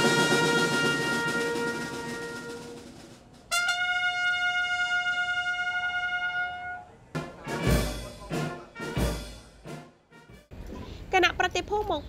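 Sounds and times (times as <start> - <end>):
brass instrument holding high note: 0.0 - 2.9, 3.5 - 10.4.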